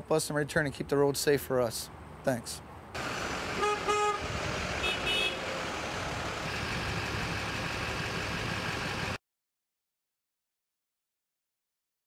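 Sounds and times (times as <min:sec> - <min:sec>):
trucks driving past: 0:00.7 - 0:09.2
truck horn toots: 0:03.6 - 0:05.5.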